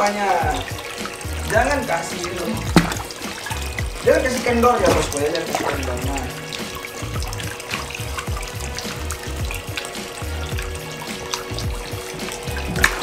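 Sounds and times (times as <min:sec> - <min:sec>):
water pouring into fish tank: 0:00.0 - 0:13.0
music with bass beat: 0:00.4 - 0:13.0
sharp knock: 0:02.7 - 0:03.4.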